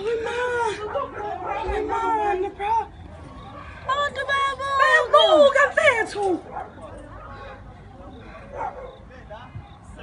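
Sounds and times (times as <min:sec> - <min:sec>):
faint scattered sounds: 0:00.0 - 0:10.0.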